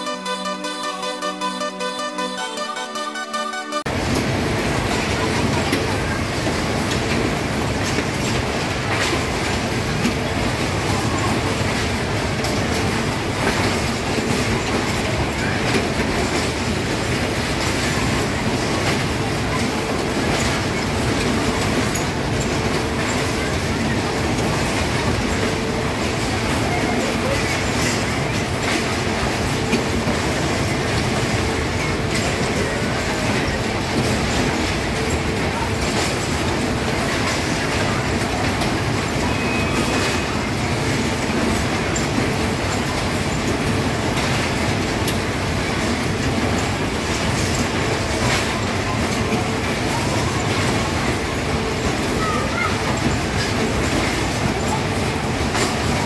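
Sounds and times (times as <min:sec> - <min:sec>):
ride cars rolling rumble: 0:03.9 - 0:56.0.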